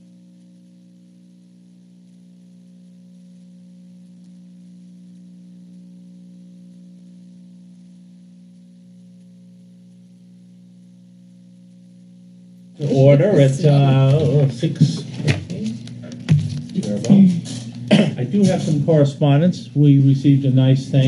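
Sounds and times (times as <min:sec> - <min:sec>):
steady low hum: 0:00.0 - 0:21.0
man's voice: 0:12.8 - 0:15.8, 0:16.7 - 0:21.0.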